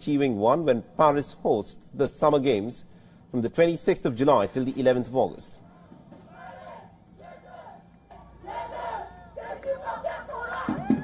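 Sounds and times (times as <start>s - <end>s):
crowd cheering and shouting: 6.2s - 11.0s.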